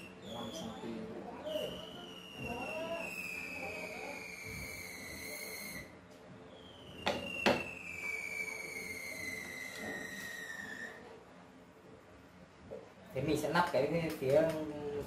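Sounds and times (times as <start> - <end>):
high whistling tones gliding down: 0.0 - 11.1.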